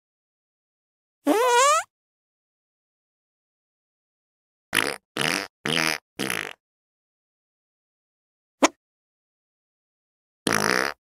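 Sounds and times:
short pitched farts: 4.8s - 6.6s, 10.5s - 11.0s.

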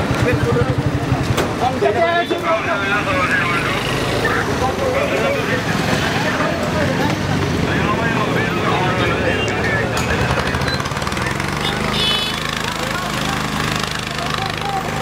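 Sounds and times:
people talking: 0.0s - 15.0s
vehicle engine humming: 0.0s - 15.0s.

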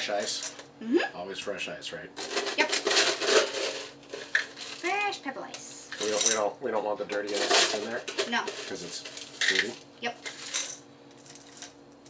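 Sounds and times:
ice cubes scraping and rattling: 2.2s - 5.0s, 5.9s - 11.8s.

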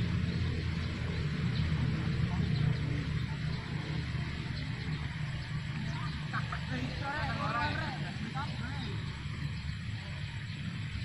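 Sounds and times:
distant players shouting: 4.6s - 10.4s.

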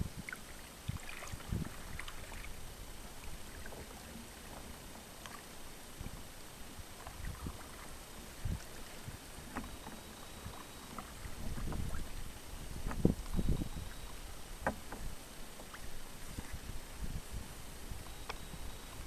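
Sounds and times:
paddle splashing water: 0.0s - 19.0s
paddle knocks: 9.5s - 12.1s, 12.8s - 13.8s, 14.5s - 16.6s.

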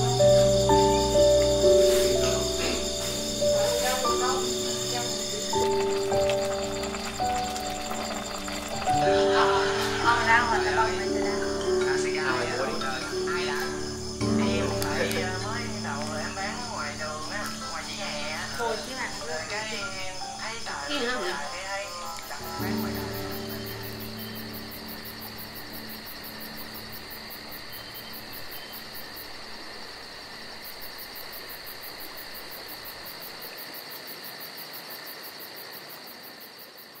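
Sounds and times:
voices: 0.0s - 27.0s
crickets chirping: 0.0s - 37.0s.

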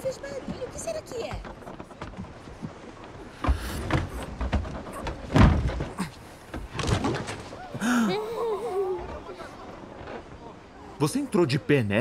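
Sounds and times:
wooden barrel knocks and thuds: 3.4s - 7.4s.

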